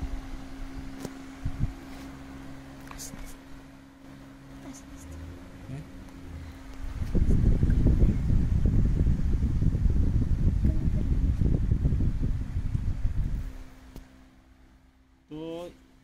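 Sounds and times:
fan airflow buffeting microphone: 0.0s - 16.0s.

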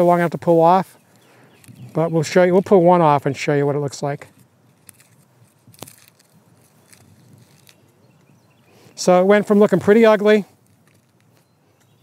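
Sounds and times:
dry garlic skins crackling: 0.0s - 12.0s.

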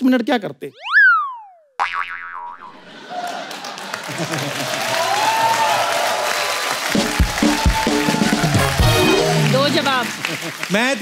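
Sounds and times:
short busy sound effect: 0.8s - 1.8s
comic boing sound effect: 0.8s - 2.9s.

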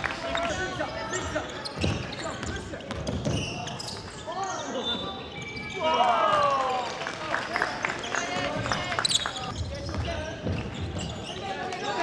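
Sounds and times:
basketball bouncing on court: 1.7s - 3.6s, 9.4s - 11.2s.

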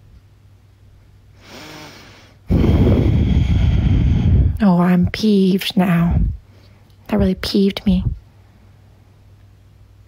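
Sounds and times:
breath blown into microphone: 1.4s - 4.6s.

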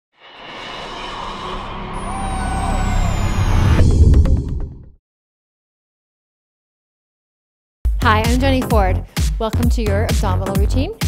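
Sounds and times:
low rumbling whoosh: 0.2s - 5.0s
sudden hit: 0.3s - 5.0s
high tone gliding downward: 0.5s - 4.8s.

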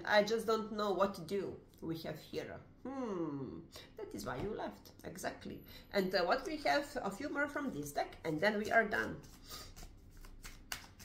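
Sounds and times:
cards being shuffled: 8.6s - 11.0s
card snap: 10.4s - 11.0s.

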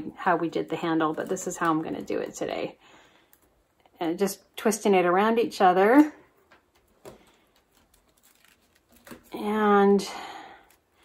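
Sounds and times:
vine crackling and rustling: 6.8s - 9.5s.

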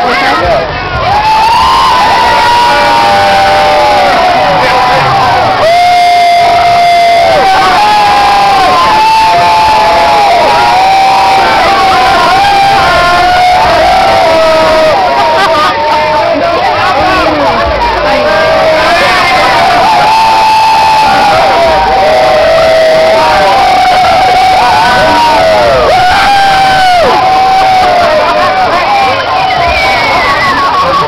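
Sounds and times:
crowd cheering and yelling: 0.0s - 31.0s.

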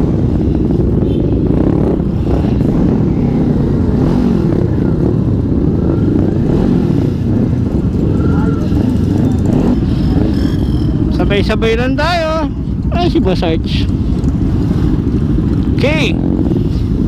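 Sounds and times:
motorcycle engines rumbling: 0.0s - 17.0s.

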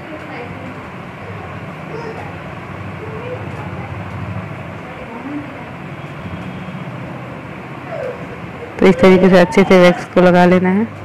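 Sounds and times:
background hum and hiss: 0.0s - 11.0s
woman speaking: 4.8s - 5.8s.

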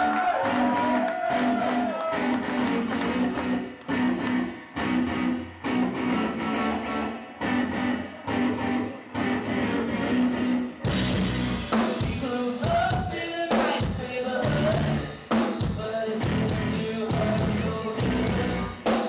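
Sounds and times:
bass guitar: 0.0s - 19.0s
drums: 0.0s - 19.0s
electric guitar riff: 0.0s - 19.0s.

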